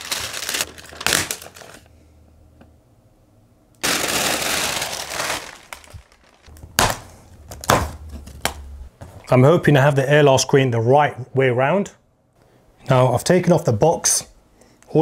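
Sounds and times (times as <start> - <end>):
packaging crinkling: 0.0 - 1.9, 3.8 - 8.5
packaging rustling and tearing: 0.0 - 1.9, 3.8 - 6.7.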